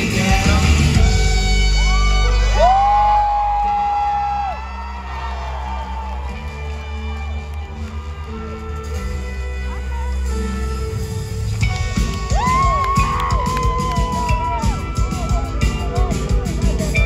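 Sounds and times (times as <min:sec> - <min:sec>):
rock band playing live: 0:00.0 - 0:04.2, 0:08.2 - 0:17.0
trumpet: 0:00.0 - 0:16.2
crowd whooping: 0:01.6 - 0:08.9, 0:11.8 - 0:17.0.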